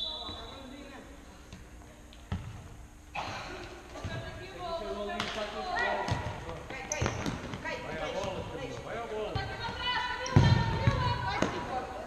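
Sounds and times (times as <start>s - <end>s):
ball thumping on floor: 6.0s - 8.4s.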